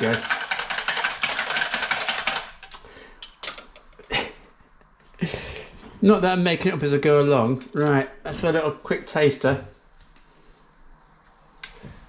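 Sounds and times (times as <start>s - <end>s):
whisk beating in plastic jug: 0.0s - 2.7s.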